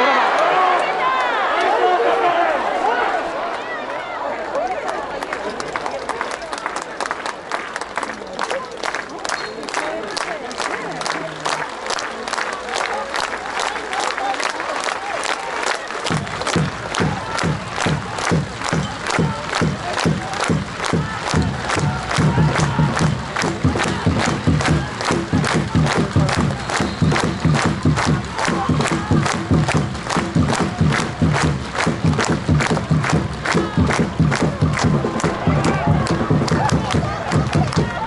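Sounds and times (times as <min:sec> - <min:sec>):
crowd clapping in unison: 0:03.5 - 0:38.0
crowd din: 0:15.9 - 0:38.0.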